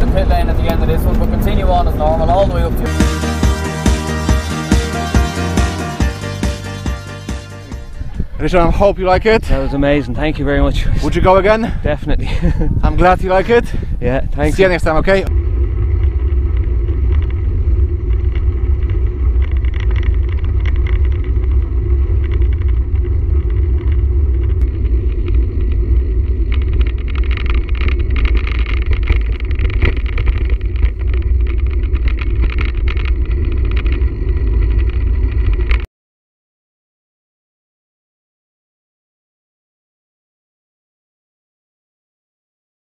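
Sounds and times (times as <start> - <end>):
wind buffeting microphone: 7.7 - 35.8.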